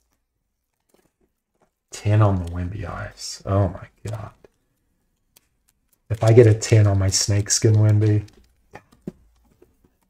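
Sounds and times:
person speaking: 1.9 - 4.6, 6.0 - 9.4.

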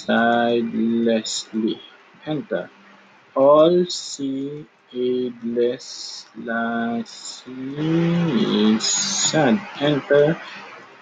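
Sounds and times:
man sounding out words: 0.0 - 2.7, 3.4 - 10.6.

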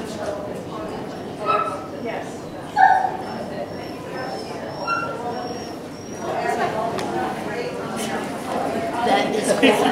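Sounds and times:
dog whining: 2.8 - 6.4.

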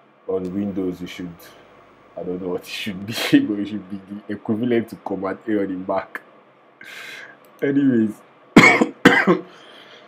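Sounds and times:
man coughing: 8.6 - 9.6.

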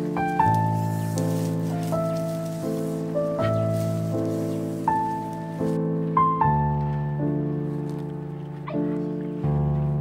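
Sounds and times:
held keyboard chords: 0.0 - 10.0.

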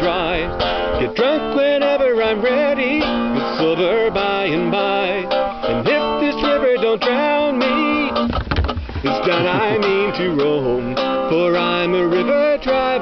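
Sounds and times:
man singing: 0.0 - 13.0
strummed acoustic guitar: 0.0 - 13.0.

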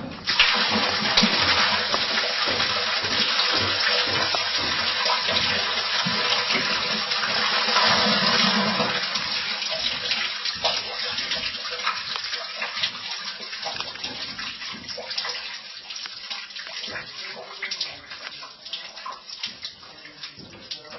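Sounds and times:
water rushing down a pipe: 0.0 - 20.9.

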